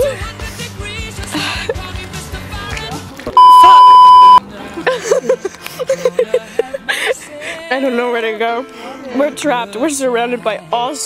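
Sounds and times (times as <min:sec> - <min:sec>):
background music with a beat: 0:00.0 - 0:04.4
censor bleep: 0:03.4 - 0:04.4.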